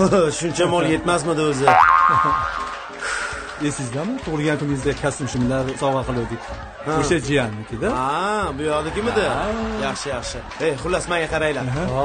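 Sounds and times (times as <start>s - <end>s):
comic upward glide ringing tone: 1.6s - 3.1s.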